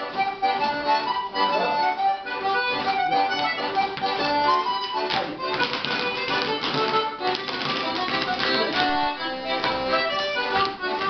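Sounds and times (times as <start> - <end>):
feet tapping on wooden floor: 0.0 - 11.0
traditional dance tune: 0.0 - 11.0.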